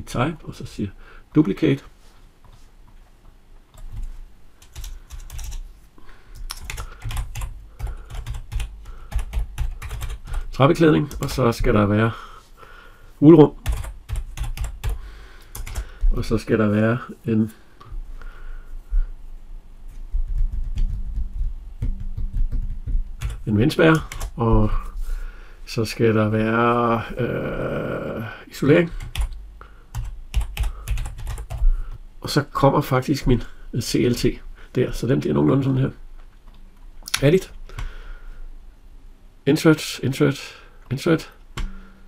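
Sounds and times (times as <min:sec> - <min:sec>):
computer keyboard typing: 0:03.7 - 0:05.6, 0:06.4 - 0:10.5, 0:13.6 - 0:16.1, 0:20.1 - 0:24.4, 0:29.0 - 0:31.6.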